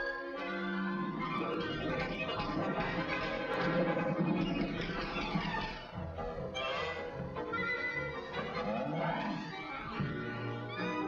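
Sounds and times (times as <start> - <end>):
orchestral music with strings: 0.0 - 11.0.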